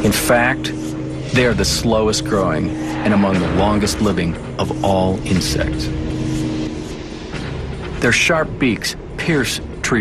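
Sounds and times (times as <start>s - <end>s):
low droning music score: 0.0s - 10.0s.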